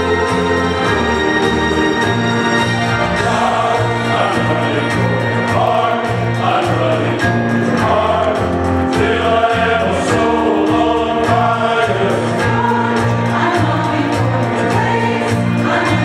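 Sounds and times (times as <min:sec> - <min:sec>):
choir singing gospel: 0:00.0 - 0:16.0
instrumental accompaniment with bass: 0:00.0 - 0:16.0.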